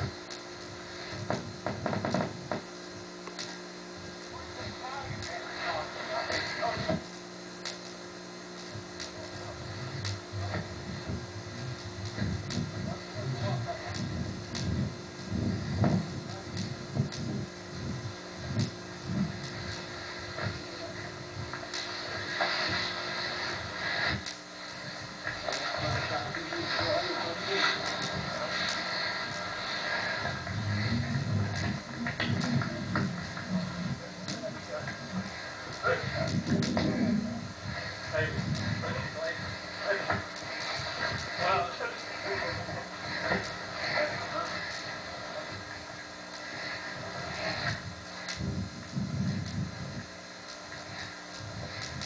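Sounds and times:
videotape hiss: 0:00.0 - 0:52.0
muffled indistinct voices: 0:03.4 - 0:52.0.

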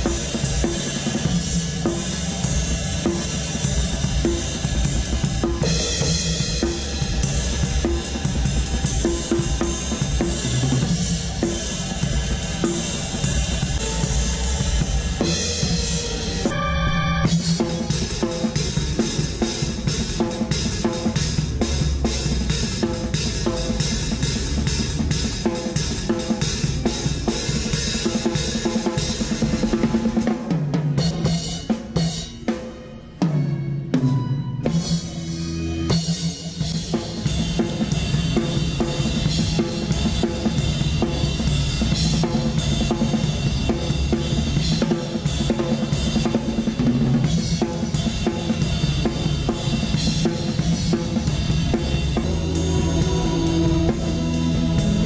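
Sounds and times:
drum kit playing: 0:00.0 - 0:55.0.

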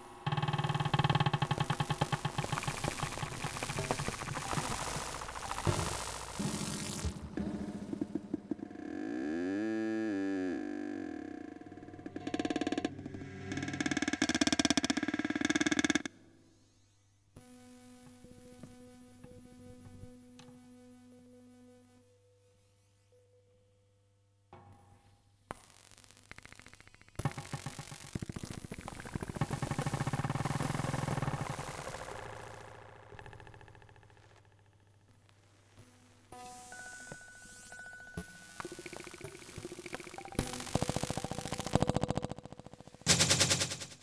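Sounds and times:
stuttering pulsing electronic texture: 0:00.3 - 0:09.2, 0:25.6 - 0:34.0, 0:37.5 - 0:44.0.

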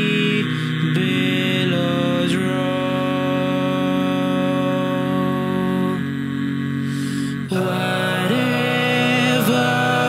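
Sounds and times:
a cappella male vocal harmony: 0:00.0 - 0:10.0.

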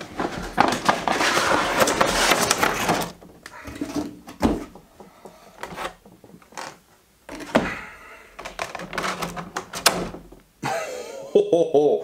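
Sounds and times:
cardboard and plastic packaging rustling: 0:00.0 - 0:04.9.

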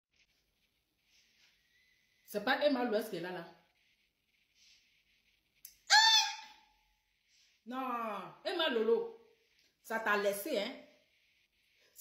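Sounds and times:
faint breath: 0:04.5 - 0:05.1
woman's high-pitched exclamation: 0:05.9 - 0:06.6.

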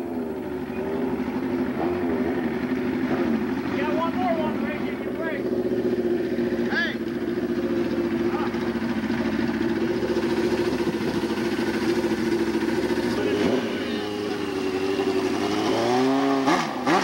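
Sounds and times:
car engine idling: 0:00.0 - 0:16.0.

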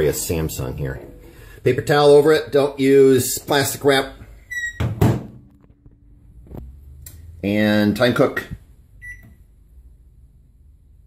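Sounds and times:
microwave door squeak: 0:04.5 - 0:05.0.

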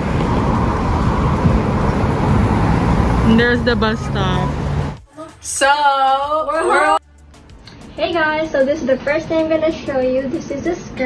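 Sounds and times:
cars running past: 0:00.0 - 0:05.0.

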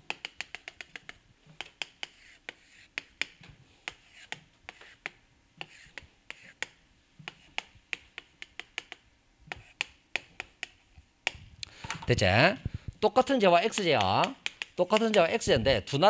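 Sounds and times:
chalk tapping and scraping on blackboard: 0:00.0 - 0:11.4, 0:13.2 - 0:15.9.

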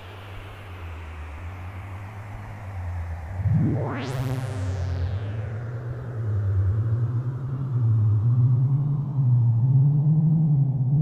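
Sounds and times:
low synth bass drone rising in pitch: 0:03.0 - 0:11.0.

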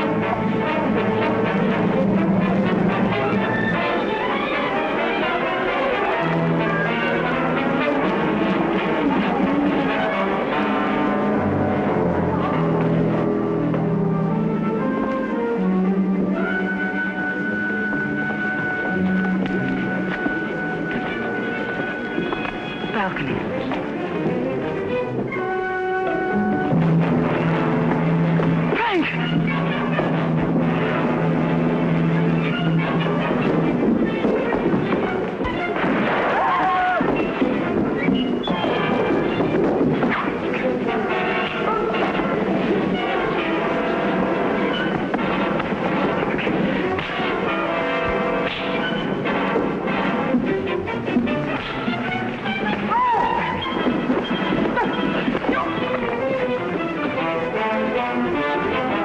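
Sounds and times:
dramatic orchestral music: 0:00.0 - 0:59.0.

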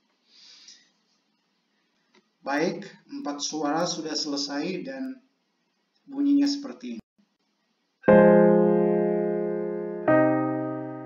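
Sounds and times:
piano chord ringing: 0:08.0 - 0:11.0.

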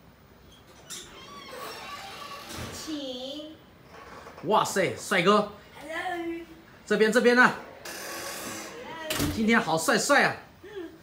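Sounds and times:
metal door squeaking open: 0:00.4 - 0:03.0, 0:03.8 - 0:04.5, 0:07.6 - 0:09.5.

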